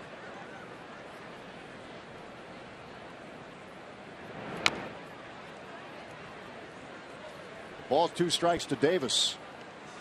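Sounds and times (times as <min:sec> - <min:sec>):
crowd murmur: 0:00.0 - 0:10.0.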